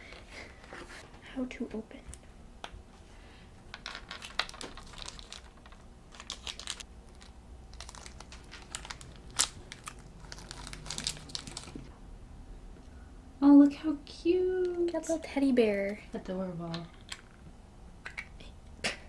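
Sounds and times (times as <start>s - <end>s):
plastic capsule crinkling and clicking: 3.7s - 11.9s.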